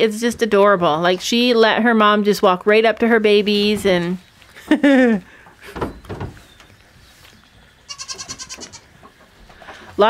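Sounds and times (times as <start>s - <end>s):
goat bleating: 7.9s - 9.0s.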